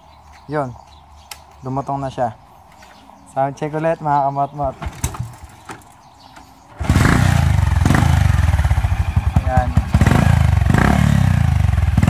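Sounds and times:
small motorcycle engine popping: 6.7 - 12.0.

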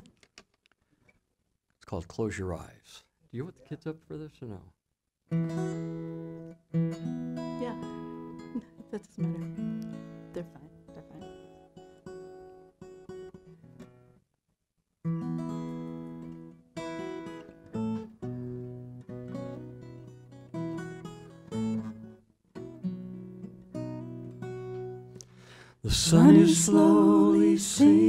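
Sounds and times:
acoustic guitar strumming chords: 15.1 - 28.0
person singing: 25.8 - 28.0.

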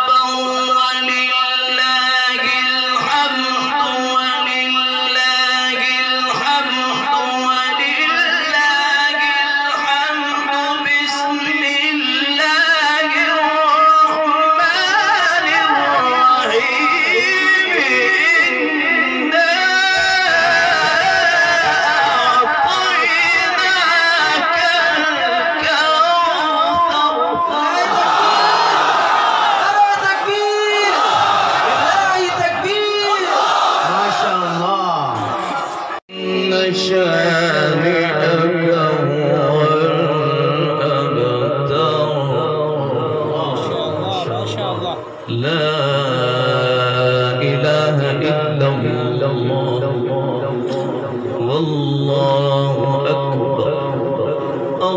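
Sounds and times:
man chanting into a microphone: 0.0 - 28.5, 29.5 - 54.9.

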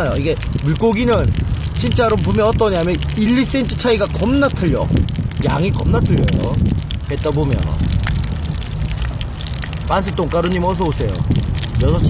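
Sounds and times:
wind rumble on microphone: 0.0 - 12.0
wood fire crackling: 0.0 - 12.0.

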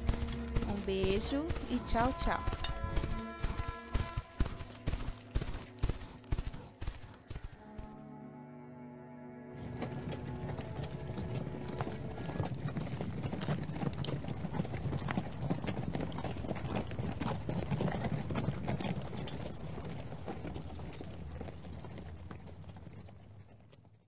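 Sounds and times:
galloping hoofbeats: 0.0 - 8.0, 9.6 - 24.0.

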